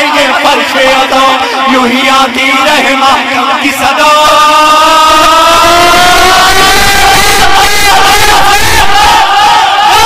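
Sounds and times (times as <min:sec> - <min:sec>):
person chanting a long note: 0:04.1 - 0:09.3.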